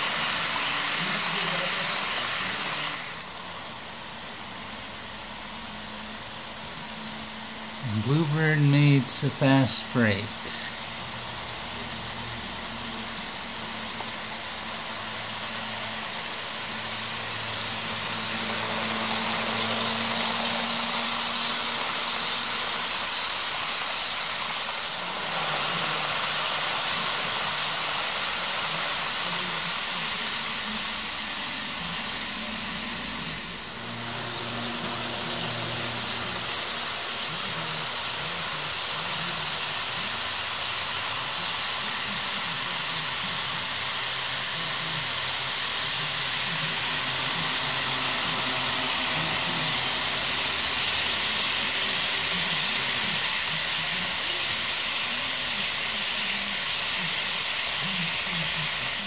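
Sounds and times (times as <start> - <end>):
model train wheels on rails: 0.0 - 59.0.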